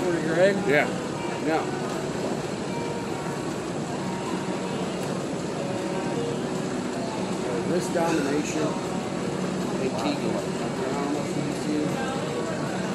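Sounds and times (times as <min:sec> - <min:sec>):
faint voices: 0:00.0 - 0:12.9
ventilation hum: 0:00.0 - 0:12.9.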